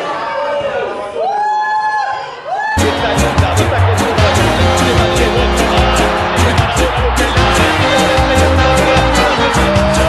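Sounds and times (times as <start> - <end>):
music with beat and deep bass: 2.8 - 10.0.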